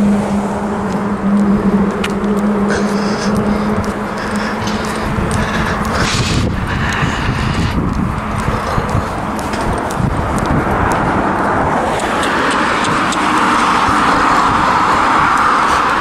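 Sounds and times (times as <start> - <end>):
car approaching: 0.0 - 16.0
footsteps on tarmac: 0.0 - 16.0.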